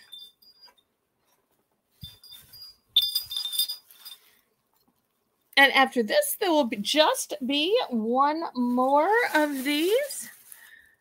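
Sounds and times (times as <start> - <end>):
metal wind chimes ringing: 0.0 - 0.9, 2.0 - 4.5.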